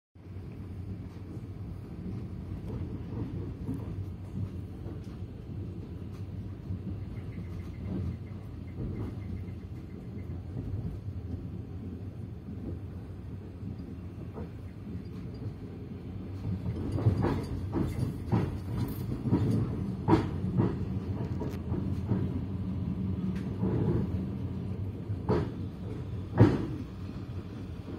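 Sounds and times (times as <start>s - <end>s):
train rumbling on rails: 0.2s - 27.9s.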